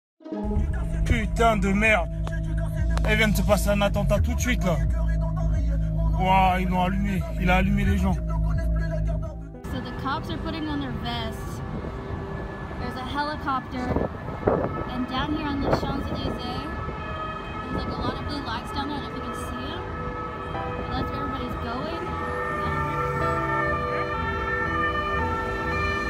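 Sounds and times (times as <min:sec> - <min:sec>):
emergency vehicle sirens: 0:00.4 - 0:26.0
street noise: 0:00.4 - 0:26.0.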